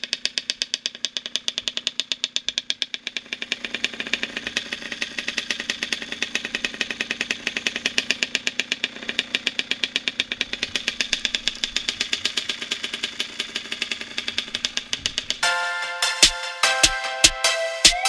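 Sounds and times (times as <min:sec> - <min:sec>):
two-stroke engine idling: 0:00.0 - 0:17.6.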